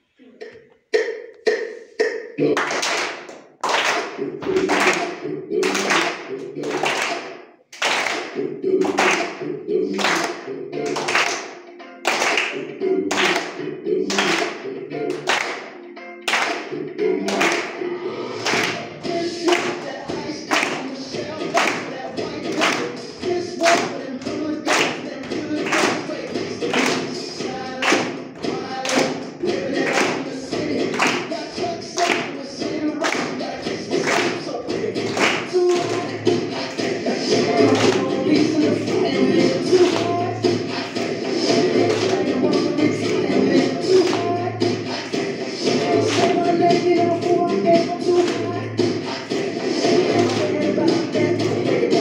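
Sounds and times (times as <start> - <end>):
song with singing: 0.0 - 52.0
children clapping in unison: 1.0 - 17.8, 18.4 - 52.0.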